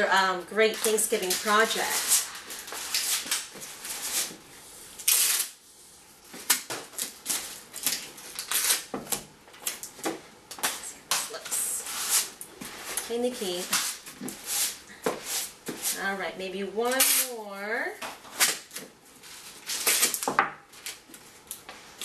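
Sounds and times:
masking tape crackling and ripping: 0:00.5 - 0:04.4, 0:05.0 - 0:05.6, 0:06.4 - 0:10.0, 0:16.8 - 0:17.4, 0:18.3 - 0:22.0.

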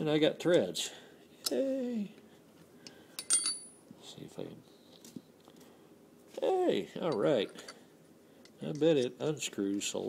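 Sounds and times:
steel hardware clinking on metal: 0:03.2 - 0:03.8, 0:07.0 - 0:07.8, 0:08.6 - 0:09.2.

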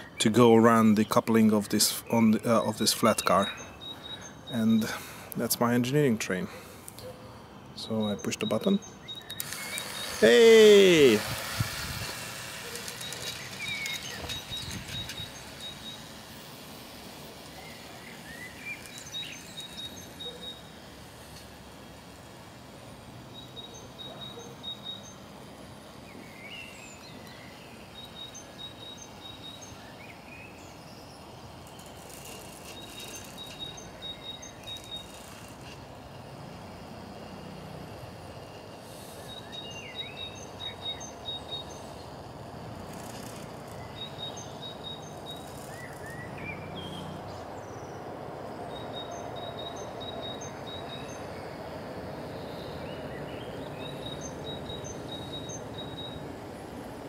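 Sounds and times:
birds chirping: 0:00.0 - 0:57.0
high rapid trill: 0:09.4 - 0:17.3.

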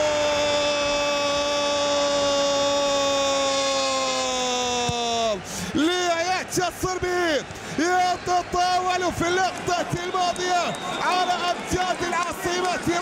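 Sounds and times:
excited shouted commentary: 0:00.0 - 0:13.0.

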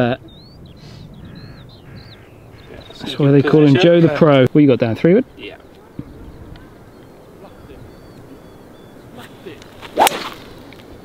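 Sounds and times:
golf club striking ball: 0:09.8 - 0:10.6.

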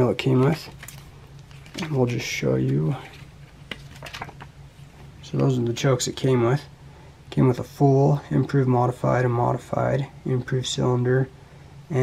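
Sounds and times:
paper pages rustling: 0:00.4 - 0:04.5.

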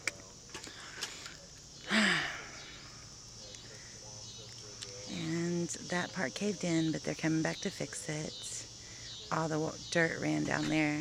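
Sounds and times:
woman sighing: 0:01.9 - 0:02.6.

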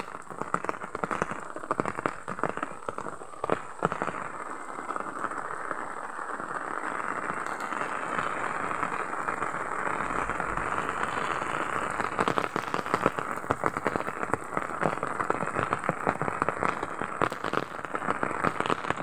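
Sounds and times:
steady rain: 0:00.0 - 0:19.0
crackling clicks: 0:07.3 - 0:15.0.

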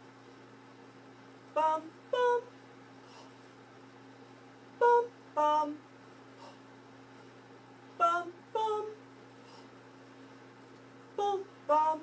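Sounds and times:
steady low hum: 0:00.0 - 0:12.0
woman singing notes: 0:01.6 - 0:02.5, 0:04.8 - 0:05.8, 0:08.0 - 0:09.0, 0:11.2 - 0:12.0.

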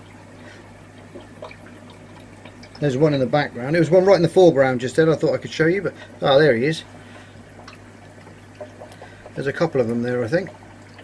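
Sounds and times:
aquarium water trickling: 0:00.0 - 0:11.0.

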